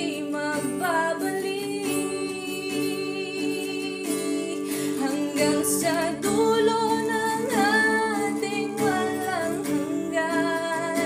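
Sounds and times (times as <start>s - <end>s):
acoustic guitar: 0.0s - 11.0s
woman singing a slow ballad: 0.0s - 11.0s.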